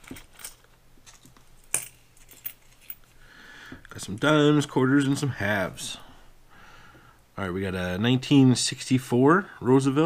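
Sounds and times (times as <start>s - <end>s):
coins clinking: 0.0s - 3.2s.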